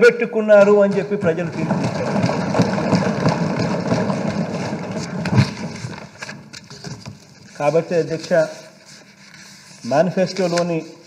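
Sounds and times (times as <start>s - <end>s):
people clapping: 0.9s - 6.1s
desk thumping: 1.2s - 6.2s.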